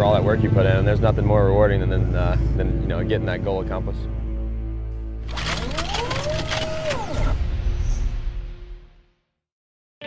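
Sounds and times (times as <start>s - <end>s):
sharp mechanical clicks: 5.2s - 7.1s.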